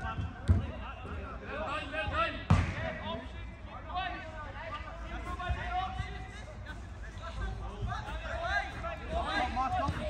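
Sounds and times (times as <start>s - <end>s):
players shouting: 7.1s - 10.0s.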